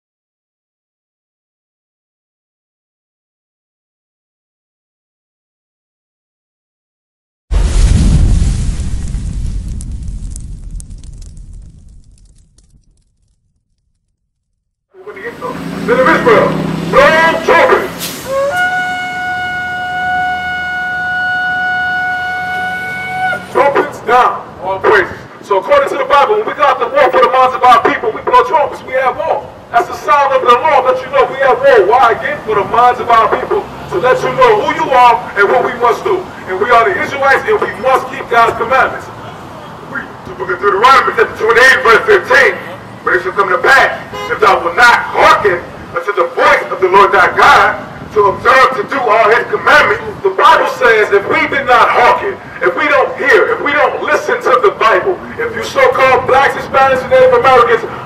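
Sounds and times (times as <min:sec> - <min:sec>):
man reading aloud into microphone: 0:15.0 - 0:18.0, 0:23.5 - 0:39.1, 0:39.9 - 0:58.0
trumpet long held note: 0:18.2 - 0:23.6.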